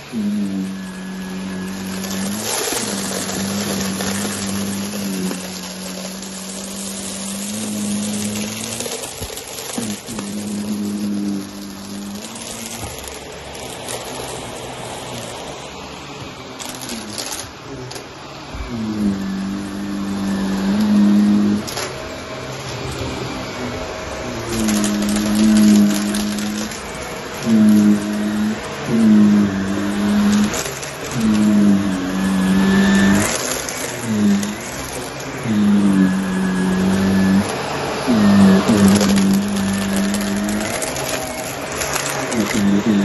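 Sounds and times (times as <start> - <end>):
vacuum cleaner running on carpet: 0.0 - 43.0.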